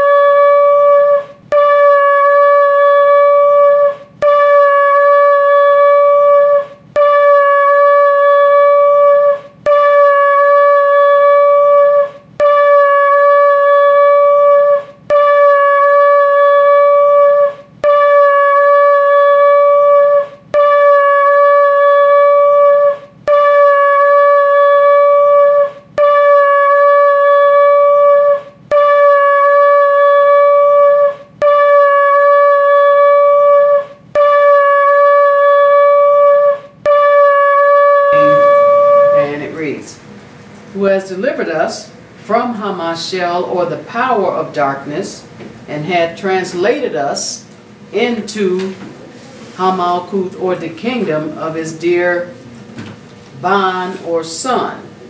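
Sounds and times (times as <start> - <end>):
shofar blasts: 0.0 - 40.0.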